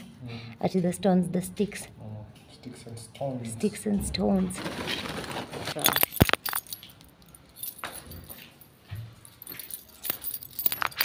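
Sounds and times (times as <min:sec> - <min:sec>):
keys jangling and clinking: 0:05.8 - 0:11.0.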